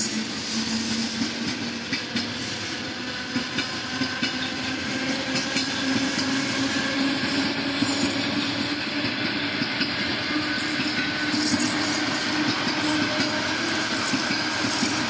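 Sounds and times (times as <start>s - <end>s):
train rolling rumble: 0.0s - 15.0s
train wheels clicking over rail joints: 0.0s - 15.0s.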